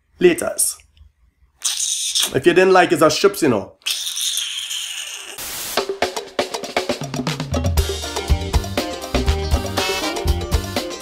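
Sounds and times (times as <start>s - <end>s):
static hiss: 5.2s - 6.0s
music with drums: 5.5s - 11.0s.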